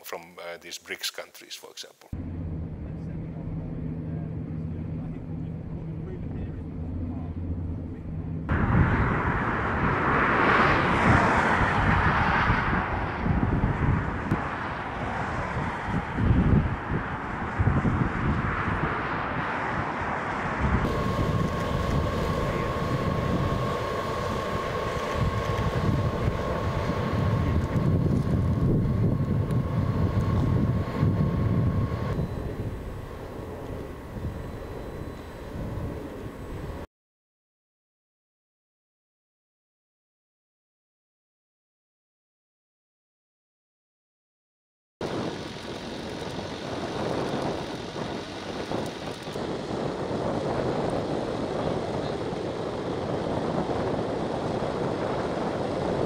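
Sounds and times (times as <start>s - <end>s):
low engine drone: 2.1s - 36.9s, 45.0s - 56.0s
steady high whine: 2.2s - 12.1s, 20.2s - 36.9s
gusty wind noise: 6.2s - 36.8s, 45.0s - 56.0s.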